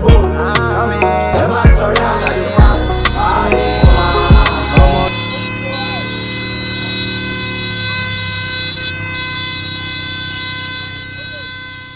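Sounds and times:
held synth chord: 0.3 - 11.9.

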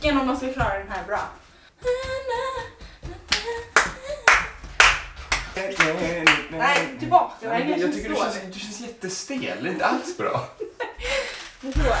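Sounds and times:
person singing a tune: 1.8 - 4.3
hand claps keeping a beat: 2.9 - 7.2.

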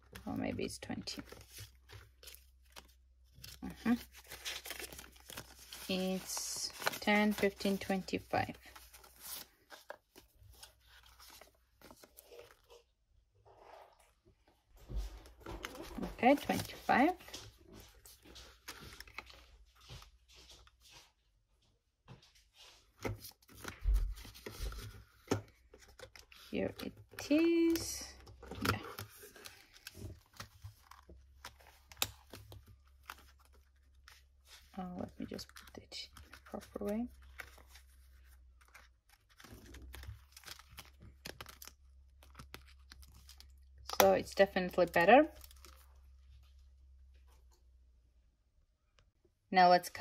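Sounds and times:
paper banknotes rustling: 0.1 - 12.7, 23.0 - 43.5.

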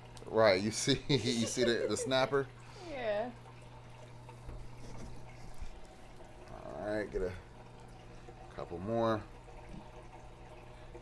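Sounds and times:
aquarium pump hum: 0.0 - 11.0
water trickling: 0.0 - 11.0.

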